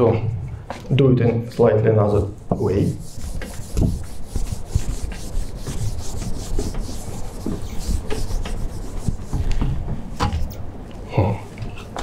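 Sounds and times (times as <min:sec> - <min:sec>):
rubbing and scraping: 0:02.6 - 0:09.7.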